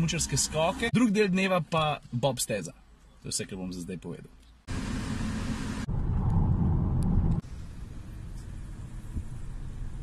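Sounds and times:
car road and engine noise: 0.0s - 1.2s, 4.3s - 10.0s.

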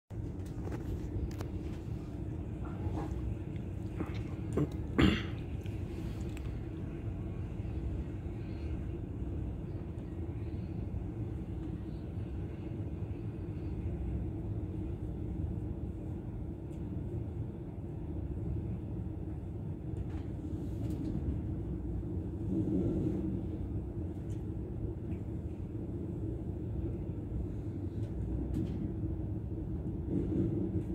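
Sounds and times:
constant low hum: 0.1s - 30.9s
train wheels rumbling on track: 0.1s - 30.9s.

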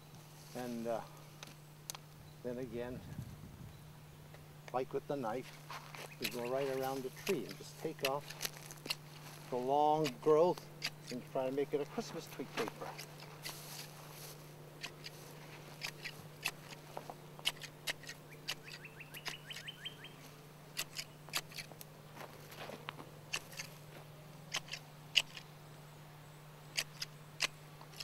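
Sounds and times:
hand shears snipping branches: 4.6s - 25.5s, 26.7s - 28.0s.

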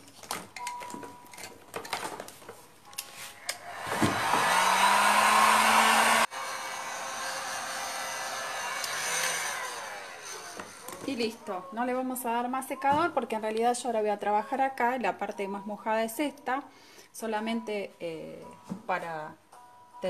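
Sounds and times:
hand-held dryer blowing: 3.5s - 11.0s.

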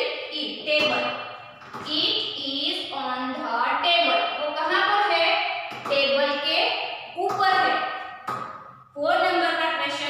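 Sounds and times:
woman talking: 0.0s - 1.2s, 1.8s - 7.8s, 9.0s - 10.0s.

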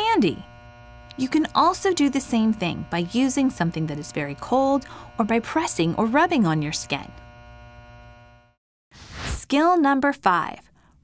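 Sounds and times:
buzzy electronic tone: 0.0s - 8.6s.

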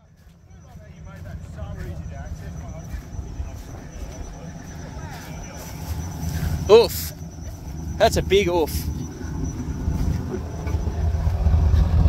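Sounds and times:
distant people talking: 0.0s - 12.0s
steady low rumble: 0.0s - 12.0s.

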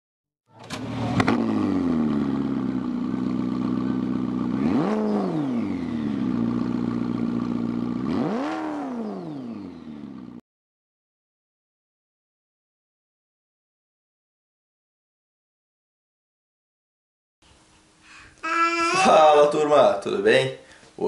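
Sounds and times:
engine starting clicks: 0.5s - 1.4s
vehicle engine idling and revving: 0.5s - 10.4s.

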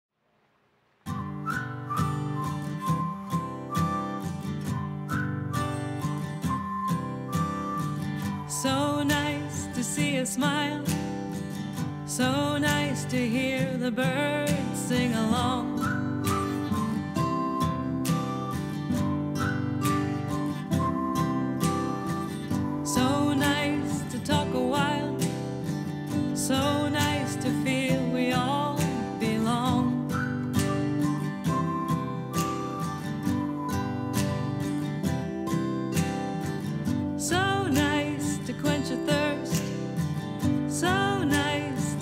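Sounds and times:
acoustic guitar strumming: 1.1s - 42.0s
whistled melody: 1.1s - 42.0s.

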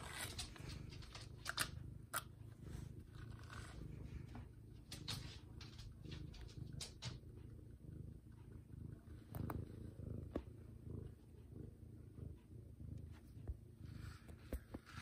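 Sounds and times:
cat purring: 0.0s - 15.0s.

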